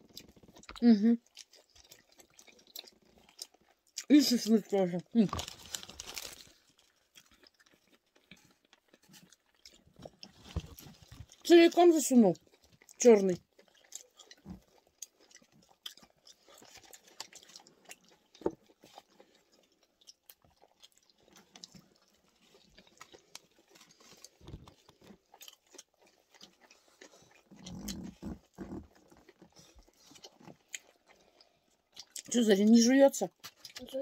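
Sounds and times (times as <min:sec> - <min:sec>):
chewing with wet mouth clicks: 0:00.0 - 0:04.4, 0:05.3 - 0:11.5, 0:12.3 - 0:32.5, 0:33.3 - 0:34.0.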